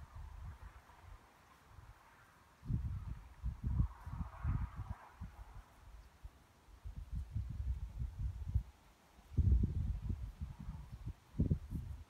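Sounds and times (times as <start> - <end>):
wind buffeting microphone: 0.0 - 2.0, 2.6 - 12.0.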